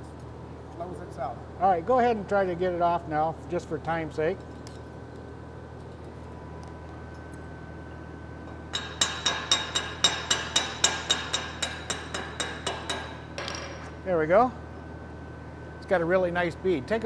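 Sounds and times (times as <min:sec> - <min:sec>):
low shop hum: 0:00.0 - 0:17.0
chipping hammer on metal: 0:08.7 - 0:13.2.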